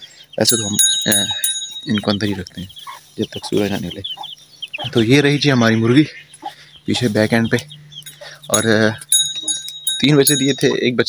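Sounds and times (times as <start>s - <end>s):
faint high chirps: 0.0s - 10.9s.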